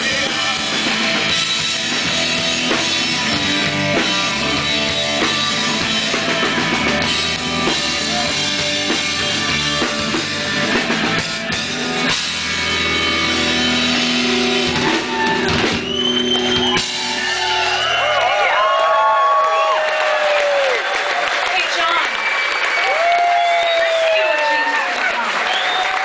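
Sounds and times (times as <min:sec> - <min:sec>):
live rock band playing: 0:00.0 - 0:18.4
audience whistling and cheering: 0:03.6 - 0:09.5, 0:12.8 - 0:26.0.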